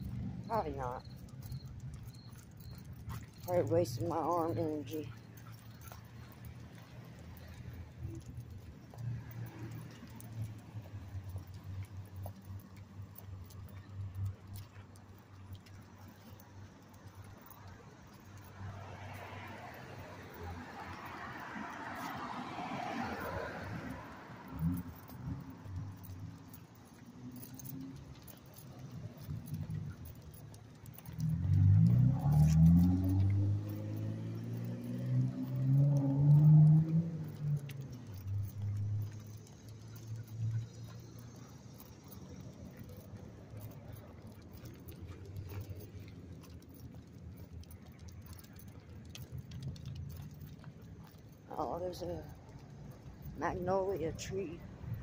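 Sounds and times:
dog collar tags jingling: 0.0 - 55.0
footsteps on sidewalk: 0.0 - 55.0
vehicle engine revving: 31.2 - 39.1.

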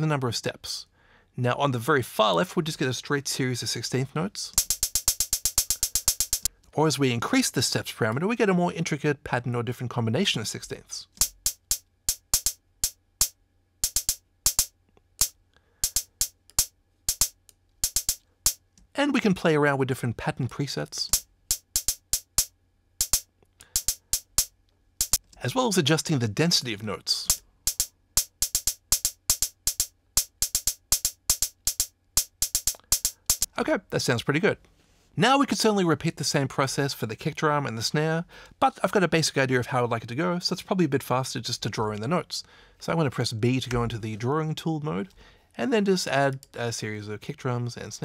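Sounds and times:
closed hi-hat ticks: 4.5 - 6.5, 11.1 - 18.8, 21.0 - 25.6, 27.1 - 33.6.

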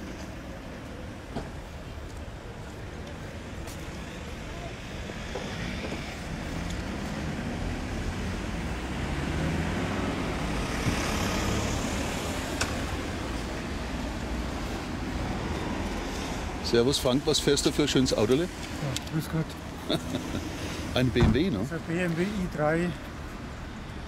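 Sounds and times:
road traffic rumble: 0.0 - 24.0
vehicle passing: 5.1 - 22.8.

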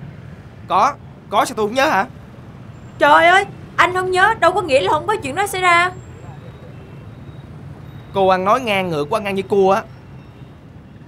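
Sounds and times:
low outdoor rumble: 0.0 - 9.8.

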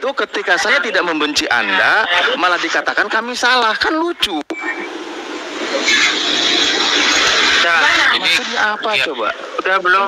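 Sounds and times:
steady rushing noise: 4.8 - 10.0.

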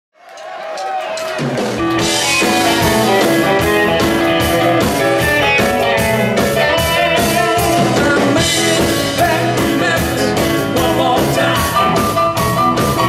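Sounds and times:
blues-rock band playing: 0.8 - 13.0.

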